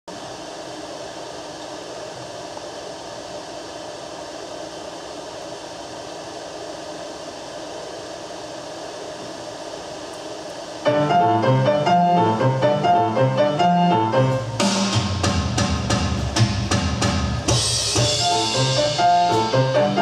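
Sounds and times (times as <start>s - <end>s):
ventilation hiss: 0.0s - 20.0s.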